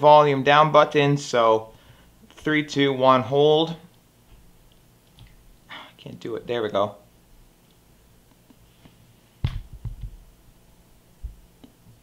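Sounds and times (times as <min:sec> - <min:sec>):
dull thump: 0:09.4 - 0:10.2.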